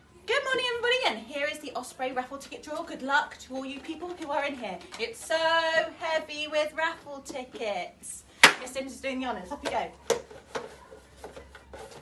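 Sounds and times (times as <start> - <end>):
hand rummaging through paper tickets: 10.4 - 12.0.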